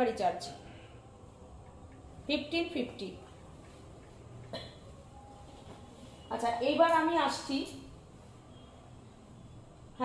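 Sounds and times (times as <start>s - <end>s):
person coughing: 4.5s - 4.9s.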